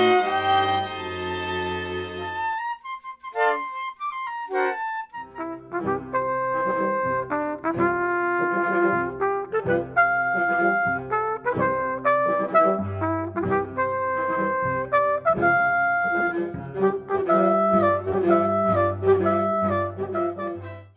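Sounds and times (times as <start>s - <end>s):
small mixed ensemble playing: 0.0s - 2.8s, 4.5s - 20.9s
trumpet held notes: 0.0s - 2.8s, 5.4s - 20.9s.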